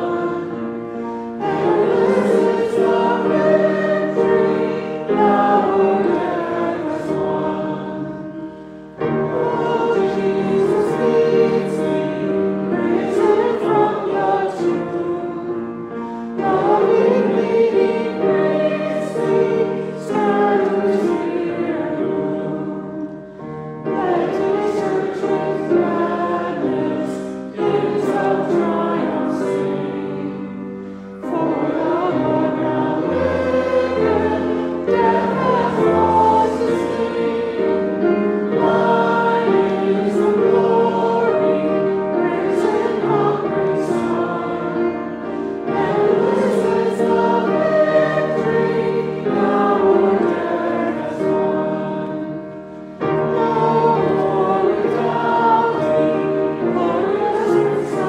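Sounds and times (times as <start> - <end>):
choir singing: 0.0 - 58.0.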